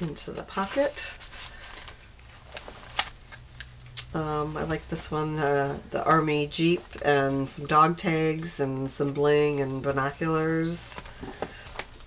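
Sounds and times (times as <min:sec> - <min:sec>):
paper pages turning: 0:00.0 - 0:04.0.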